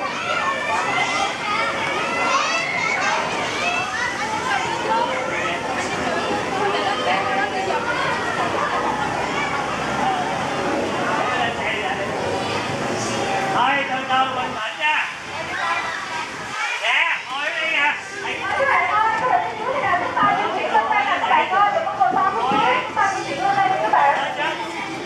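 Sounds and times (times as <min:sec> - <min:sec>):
children's voices babbling: 0:00.0 - 0:11.4, 0:15.3 - 0:17.4.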